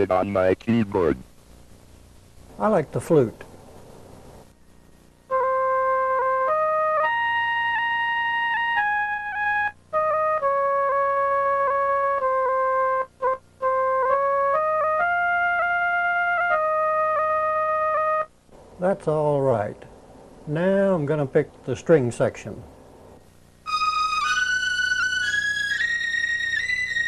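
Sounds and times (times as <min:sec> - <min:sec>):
sampled flute melody: 0:05.3 - 0:18.4, 0:23.6 - 0:27.0.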